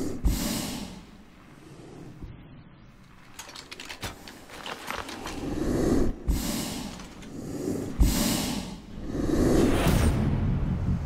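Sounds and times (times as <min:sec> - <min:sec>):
breathing through gas mask: 0:05.4 - 0:09.7.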